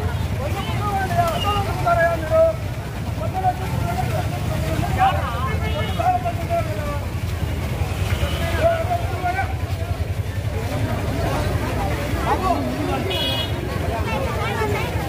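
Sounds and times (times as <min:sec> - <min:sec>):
voices of marching crowd: 0:00.0 - 0:15.0.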